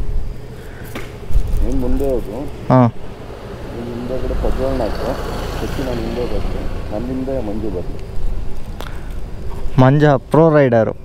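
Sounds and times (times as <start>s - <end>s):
motorcycles rumbling: 0.0s - 11.0s
voices talking: 0.0s - 11.0s.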